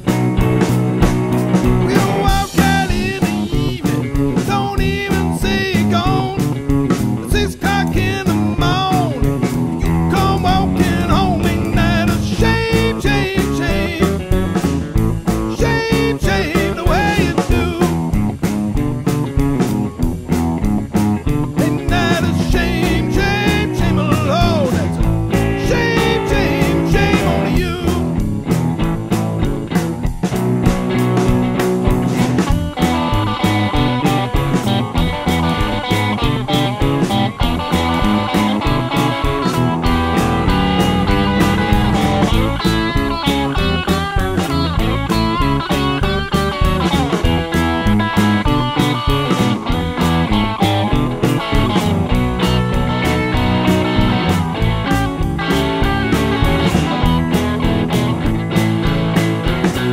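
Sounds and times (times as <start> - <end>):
blues rockabilly band playing: 0.0 - 59.9
electric guitar: 0.0 - 59.9.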